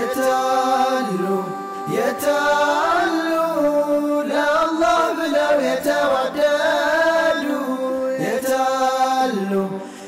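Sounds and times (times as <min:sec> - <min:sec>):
voices singing in harmony: 0:00.0 - 0:10.0.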